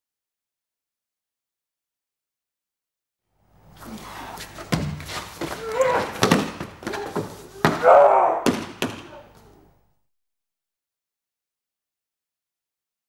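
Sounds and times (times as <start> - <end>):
strained grunts: 3.8 - 4.7
bodies thudding on mat: 4.6 - 9.2.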